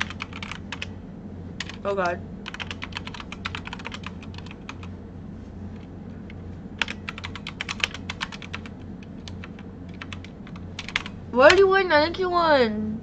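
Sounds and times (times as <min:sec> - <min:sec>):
keyboard typing: 0:00.0 - 0:00.9, 0:01.6 - 0:04.9, 0:06.3 - 0:11.6
steady low hum: 0:00.0 - 0:13.0.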